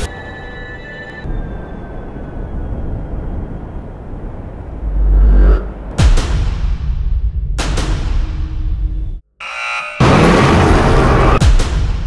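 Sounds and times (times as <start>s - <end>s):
deep rumble with low hum: 3.8s - 6.3s
buzzing electronic tone: 9.4s - 10.0s.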